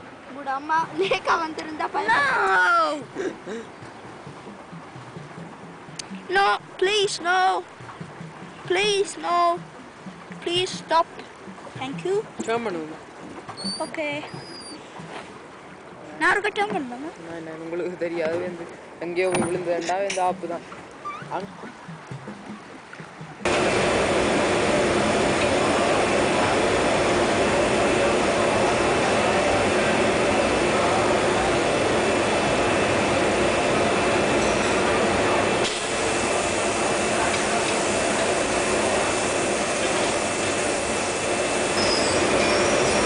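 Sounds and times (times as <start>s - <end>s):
glass furnace burners and blowers: 23.5s - 43.0s.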